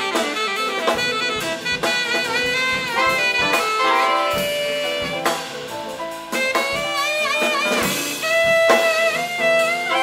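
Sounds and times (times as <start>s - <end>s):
drum hits: 0.0s - 10.0s
jazz big band playing: 0.0s - 10.0s
tenor saxophone: 0.0s - 10.0s
trumpet: 0.0s - 10.0s.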